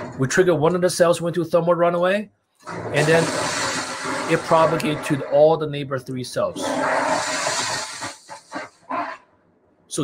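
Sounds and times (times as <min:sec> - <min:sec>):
battery venting hiss: 0:02.6 - 0:05.4, 0:06.6 - 0:09.2
sharp crackles: 0:02.6 - 0:05.4, 0:06.6 - 0:09.3.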